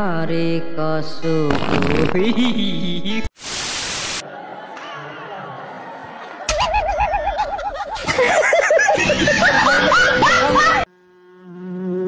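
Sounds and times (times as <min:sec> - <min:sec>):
men laughing and whooping: 0:04.2 - 0:10.9
cartoon bee buzz sound effect: 0:10.9 - 0:12.0.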